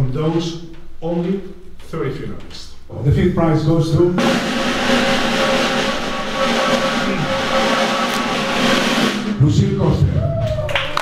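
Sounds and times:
drum roll on drum kit: 4.1s - 10.0s.

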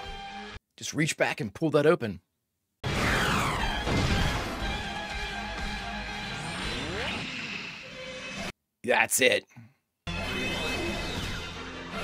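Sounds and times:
dense crash sound effect: 2.8s - 4.8s.

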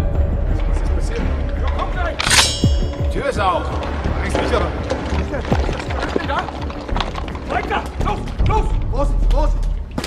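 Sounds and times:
low background music: 0.0s - 10.0s
metal staff clanging: 2.2s - 3.3s.

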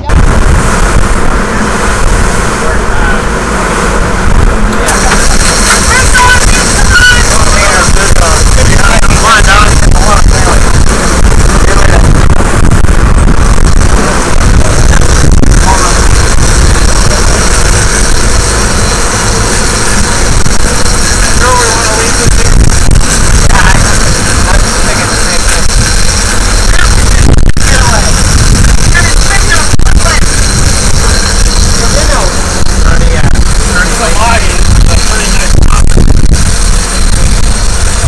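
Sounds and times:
boat engine running: 0.0s - 38.0s
churning wake water: 0.0s - 38.0s
voices: 0.0s - 38.0s
wind on microphone: 0.0s - 38.0s.

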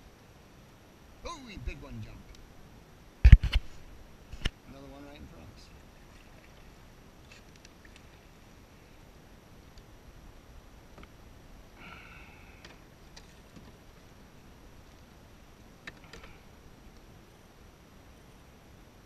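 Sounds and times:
light clicks and knocks on kayak: 12.6s - 13.8s, 15.8s - 16.4s.

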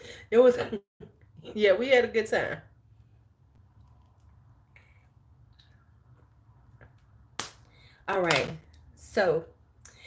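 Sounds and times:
sharp snap: 7.4s - 7.7s.

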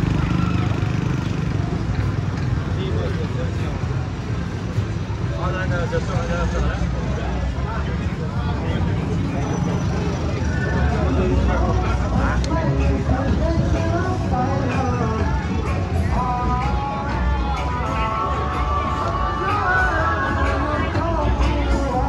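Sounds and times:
people talking: 0.0s - 22.0s
vehicle traffic rumble: 0.0s - 22.0s.

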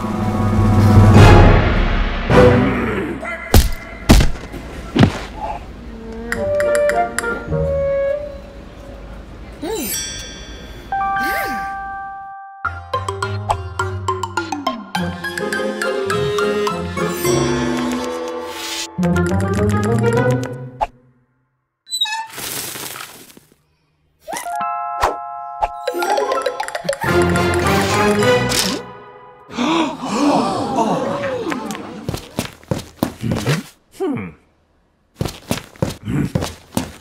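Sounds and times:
marimba-like music: 12.7s - 17.4s, 25.8s - 28.4s.

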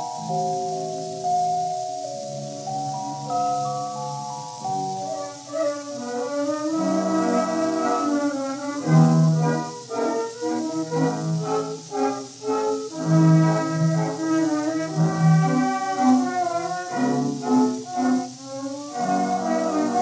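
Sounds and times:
record surface hiss: 0.0s - 20.0s
small orchestra playing: 0.0s - 20.0s.

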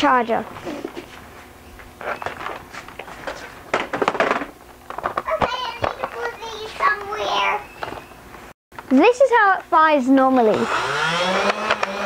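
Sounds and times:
children's voices: 5.2s - 8.0s.

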